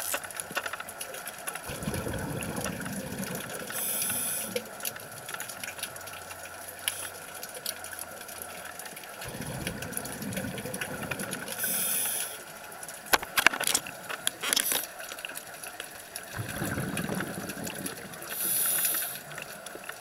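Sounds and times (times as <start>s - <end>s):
faint scattered clicks: 0.0s - 1.7s, 3.6s - 20.0s
exhaled bubbles underwater: 1.6s - 13.1s, 15.1s - 20.0s
regulator inhalation hiss: 3.8s - 4.6s, 11.6s - 12.4s, 18.3s - 19.3s.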